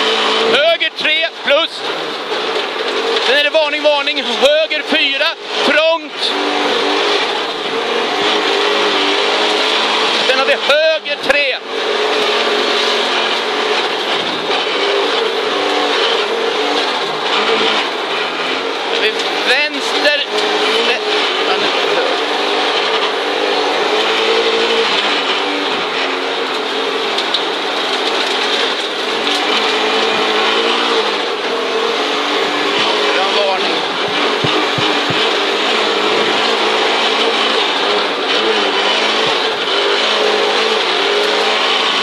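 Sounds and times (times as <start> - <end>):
rally car engine revving: 0.0 - 42.0
tyre and road noise: 0.0 - 42.0.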